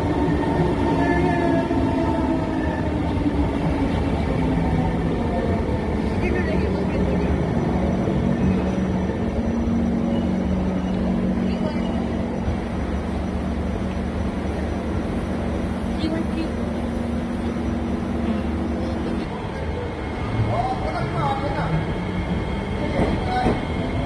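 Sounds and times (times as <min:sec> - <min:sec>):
wheels rumbling on rails: 0:00.0 - 0:24.0
voices: 0:06.0 - 0:13.5, 0:15.8 - 0:24.0.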